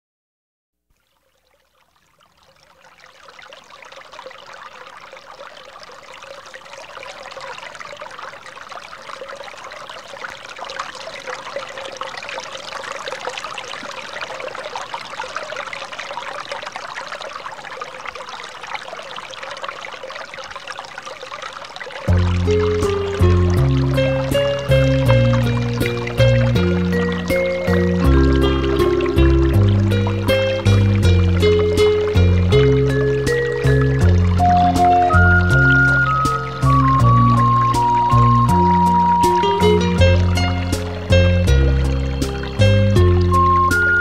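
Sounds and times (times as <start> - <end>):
stream babbling: 0.9 - 44.0.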